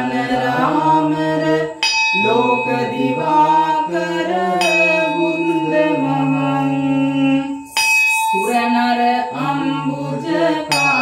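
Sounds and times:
person singing devotional song: 0.0 - 11.0.

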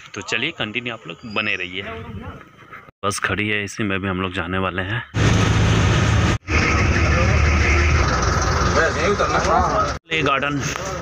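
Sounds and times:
bus engine rumble: 5.2 - 10.0
road noise: 5.2 - 11.0
people talking: 6.5 - 8.1, 8.7 - 11.0.

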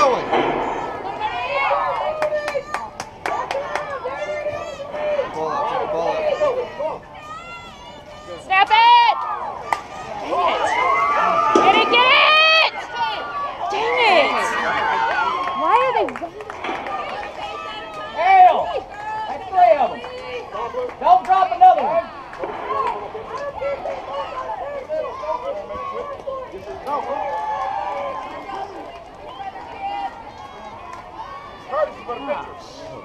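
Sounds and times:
loud shouts: 0.0 - 16.0.

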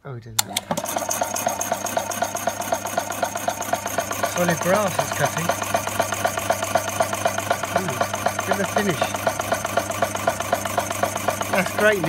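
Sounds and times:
power hacksaw cutting metal: 0.4 - 12.0.

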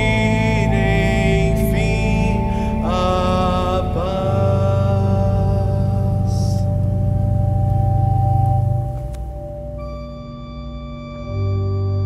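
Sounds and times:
pipe organ holding a chord: 0.0 - 11.4.

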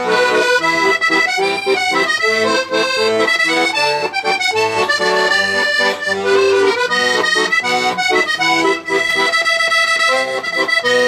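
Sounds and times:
button accordion solo tune: 0.0 - 11.0.

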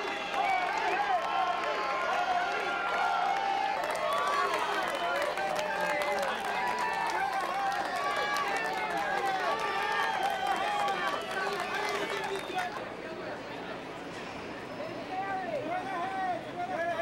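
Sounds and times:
scattered clapping: 0.0 - 12.9
crowd calling and shouting: 0.0 - 17.0.

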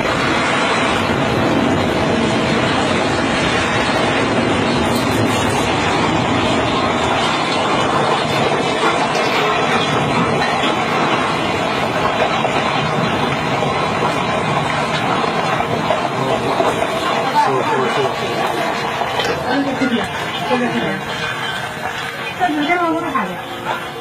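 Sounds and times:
building collapsing rumble: 0.0 - 24.0.

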